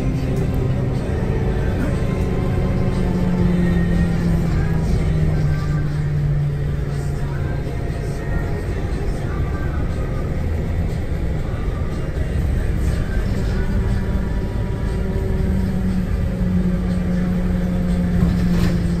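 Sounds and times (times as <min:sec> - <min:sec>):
low hum rising in pitch: 0:00.0 - 0:19.0
road vehicle rumble: 0:00.0 - 0:19.0.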